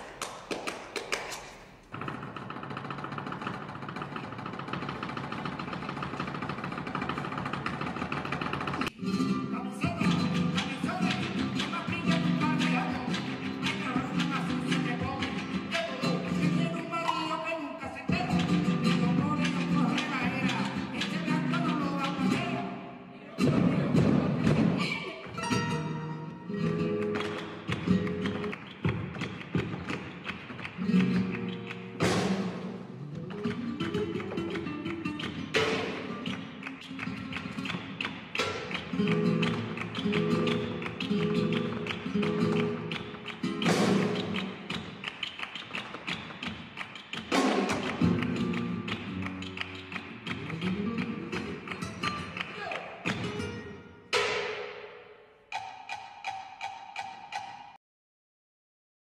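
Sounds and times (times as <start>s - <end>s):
guitar: 1.9s - 54.9s
sharp percussive strikes: 27.0s - 57.8s.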